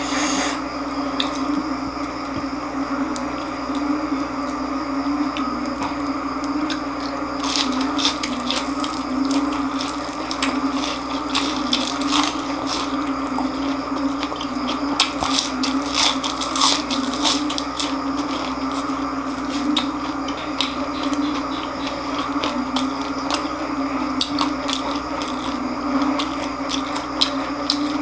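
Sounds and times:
crunching and chewing fried food: 0.0 - 28.0
steady low hum: 0.0 - 28.0.

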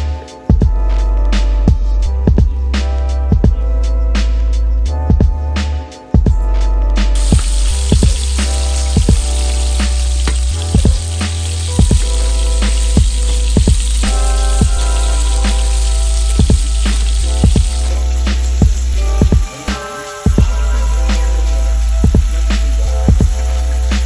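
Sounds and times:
background music with beat: 0.0 - 24.0
chicken sizzling in oil: 7.2 - 24.0.

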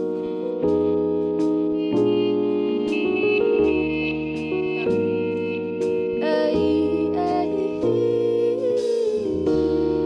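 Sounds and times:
sustained keyboard chords: 0.0 - 10.0
melodic line sliding in pitch: 1.7 - 10.0
drum and cymbal strikes: 8.6 - 9.4.

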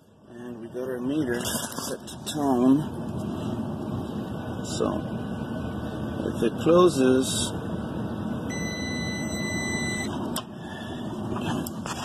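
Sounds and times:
hvac unit running: 0.0 - 12.0
multimeter continuity beep: 8.5 - 10.2.

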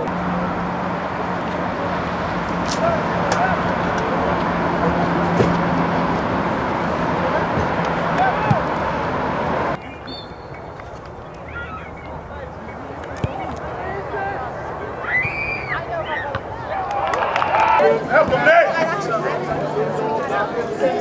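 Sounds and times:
highway traffic roar: 0.0 - 21.0
faint distant voices: 9.7 - 21.0.

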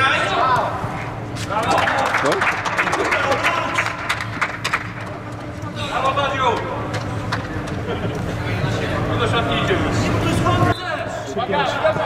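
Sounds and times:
hand claps: 1.7 - 5.4.

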